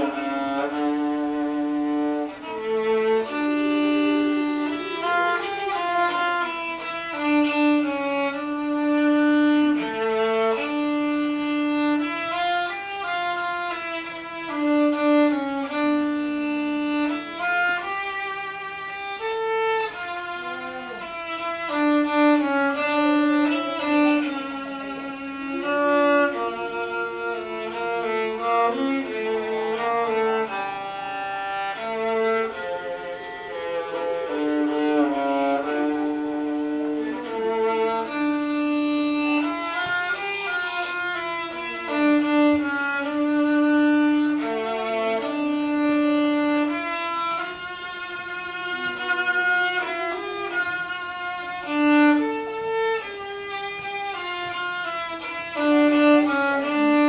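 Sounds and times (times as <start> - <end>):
solo viola bowed: 0.0 - 57.0.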